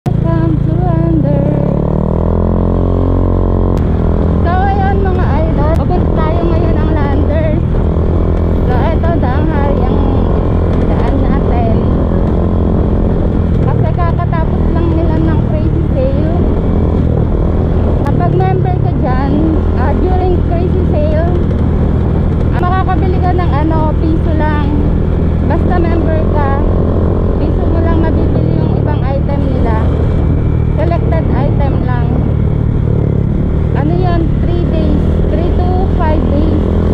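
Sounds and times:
motorcycle engine running: 0.0s - 36.9s
person talking: 4.4s - 7.7s, 8.6s - 12.2s, 13.6s - 16.5s, 18.1s - 21.4s, 22.5s - 24.9s, 25.5s - 26.7s, 27.4s - 29.9s, 30.8s - 32.3s, 33.8s - 36.6s.

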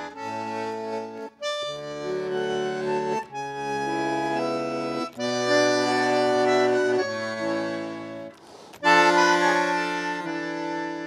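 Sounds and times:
bandoneon playing slow chords: 0.0s - 11.0s.

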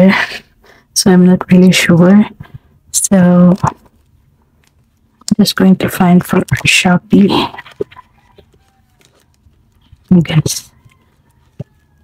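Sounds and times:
woman speaking: 0.0s - 0.4s, 1.0s - 3.8s, 5.2s - 8.1s, 10.0s - 10.8s
handling leather binder and envelopes: 7.6s - 12.0s.

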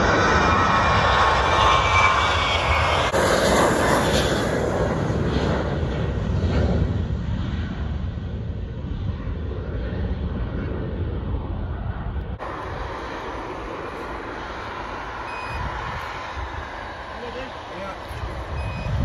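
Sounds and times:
jet engine noise: 0.0s - 19.0s
wind rumble on microphone: 0.0s - 19.0s
turbofans on landing roll: 10.2s - 19.0s.

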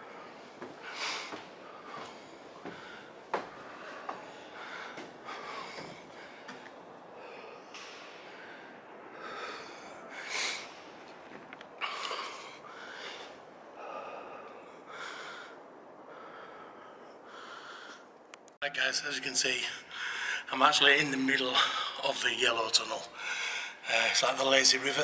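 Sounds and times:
man breathing heavily: 0.0s - 18.3s, 19.8s - 20.5s, 23.1s - 24.1s.

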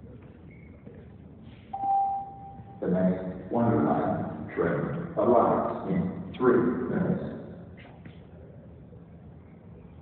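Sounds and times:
electronic chime tone: 1.8s - 2.8s.

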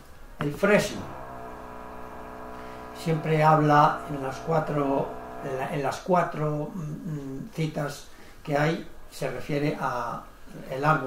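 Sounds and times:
man's drawn-out hesitation sound: 0.4s - 1.4s, 2.6s - 6.2s.

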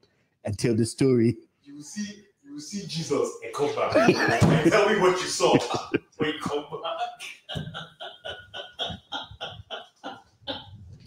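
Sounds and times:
woman laughing hard: 3.9s - 4.8s, 5.4s - 6.1s, 7.3s - 10.9s.

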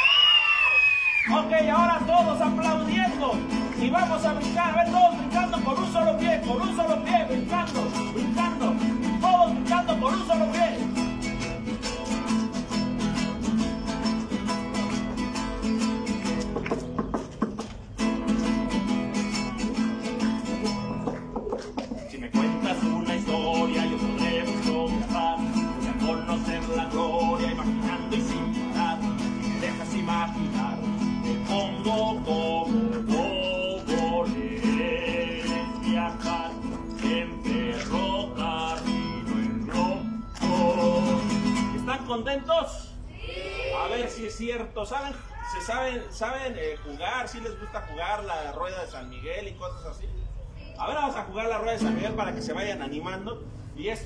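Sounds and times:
acoustic guitar strummed fast: 1.3s - 42.1s, 51.8s - 53.0s.

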